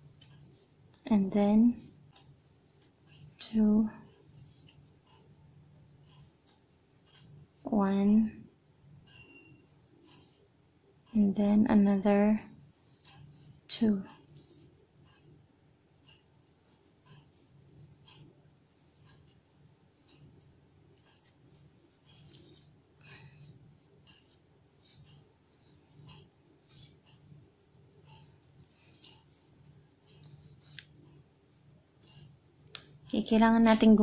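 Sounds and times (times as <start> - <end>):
crochet hook ticking on yarn: 0.0 - 34.0.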